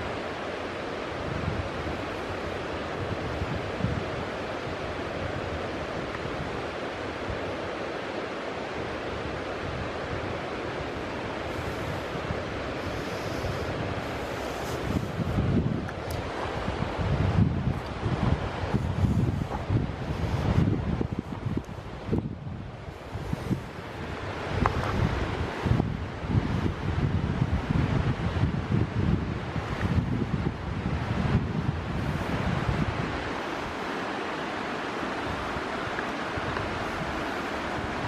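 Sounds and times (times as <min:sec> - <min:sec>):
steady rushing hiss: 0:00.0 - 0:38.0
wind buffeting microphone: 0:00.0 - 0:38.0.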